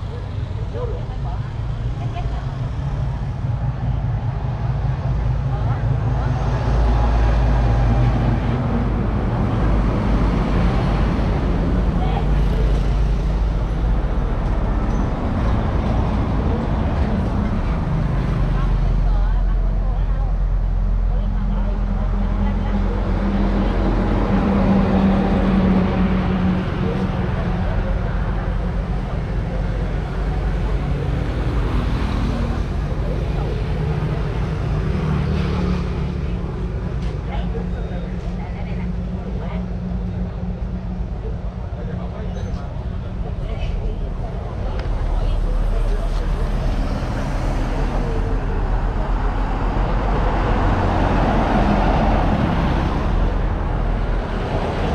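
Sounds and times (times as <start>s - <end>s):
indistinct voices: 0.0s - 54.9s
traffic engine rumble: 0.0s - 54.9s.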